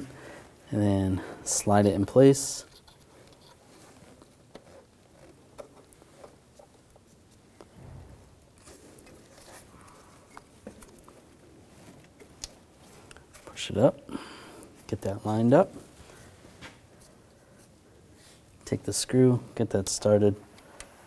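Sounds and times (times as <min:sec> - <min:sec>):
soft low thump: 0:07.7 - 0:08.5.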